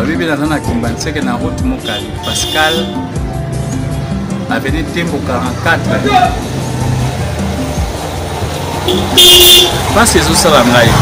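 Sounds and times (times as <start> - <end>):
vehicle horn honking: 1.8 - 3.0, 8.9 - 9.9.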